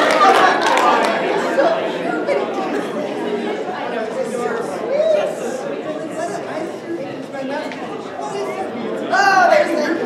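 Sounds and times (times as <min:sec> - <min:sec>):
voices talking in a hall: 0:00.0 - 0:10.0.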